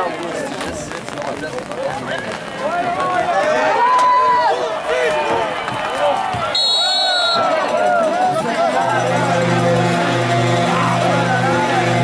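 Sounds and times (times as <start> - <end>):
crowd cheering and yelling: 2.6 - 12.0
whistle blown: 6.5 - 7.6.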